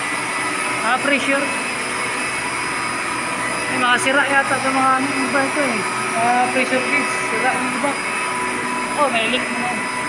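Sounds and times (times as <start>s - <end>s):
high whining tones: 0.0s - 10.0s
water plant pumps humming: 0.0s - 10.0s.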